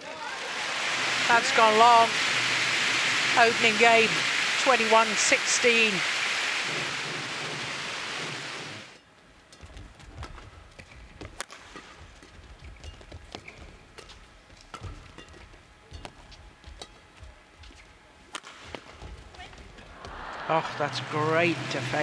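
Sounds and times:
audience clapping: 0:00.8 - 0:08.9, 0:19.9 - 0:22.0.

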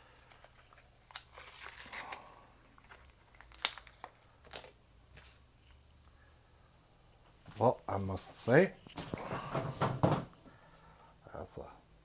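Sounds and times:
packaging crinkling and tearing: 0:00.1 - 0:04.8.

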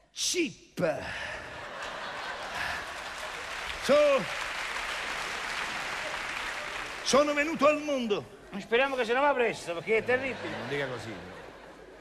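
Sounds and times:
audience applauding: 0:01.9 - 0:08.1.

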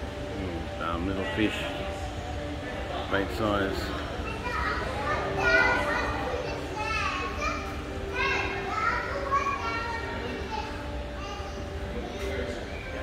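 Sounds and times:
children talking and calling out: 0:03.8 - 0:13.0.

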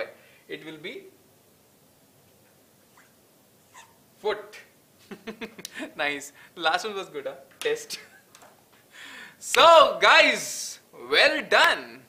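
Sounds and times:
marker pen squeaking on paper: 0:02.8 - 0:04.0.

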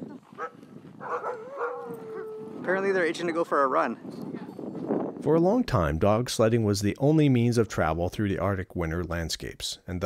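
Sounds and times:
dog yelp: 0:00.4 - 0:02.4
dogs whining and howling: 0:01.0 - 0:02.7.

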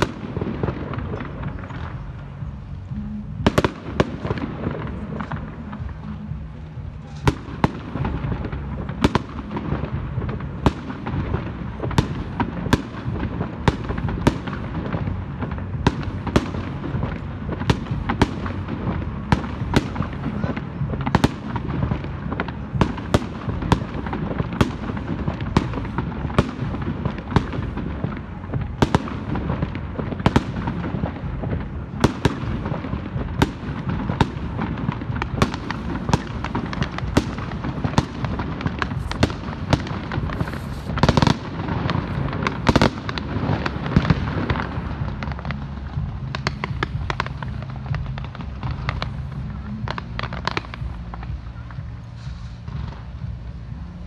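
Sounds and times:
continuous low rumble: 0:00.0 - 0:54.0
fireworks cracks and bangs: 0:00.0 - 0:54.0.

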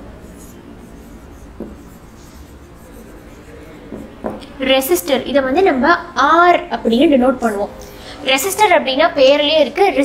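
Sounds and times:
marker pen on whiteboard: 0:00.0 - 0:05.7.

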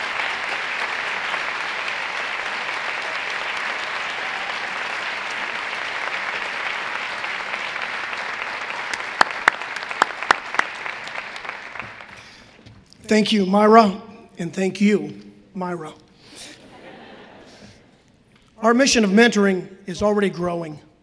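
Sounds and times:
audience applauding: 0:00.0 - 0:12.7.

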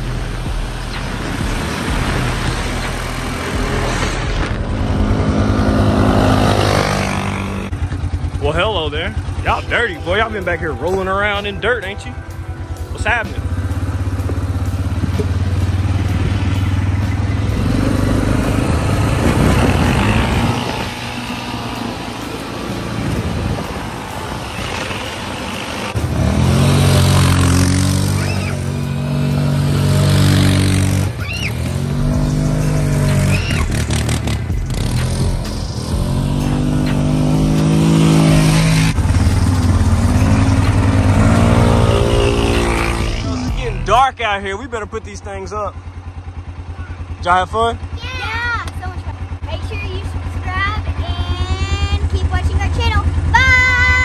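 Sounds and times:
atv engine revving: 0:00.0 - 0:54.0.

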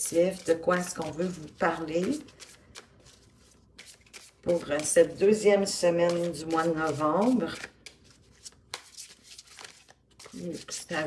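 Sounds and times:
soft card strokes: 0:00.0 - 0:05.2, 0:05.9 - 0:11.0
rustling of cards: 0:00.0 - 0:11.0.

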